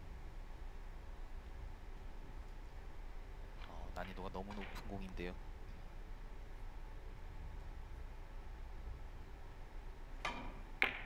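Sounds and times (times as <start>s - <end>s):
billiard balls clacking: 4.0s - 5.0s, 10.3s - 11.0s.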